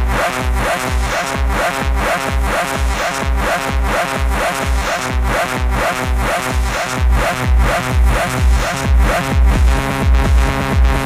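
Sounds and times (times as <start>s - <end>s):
kick drum: 0.0s - 11.0s
repeating synth loop: 0.0s - 11.0s.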